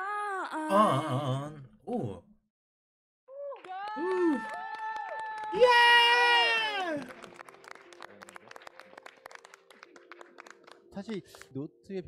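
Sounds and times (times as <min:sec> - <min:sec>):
small group clapping: 0:03.3 - 0:11.6.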